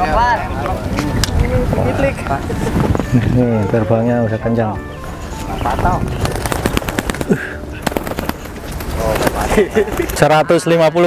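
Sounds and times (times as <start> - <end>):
pigeon wings flapping: 5.8 - 10.3.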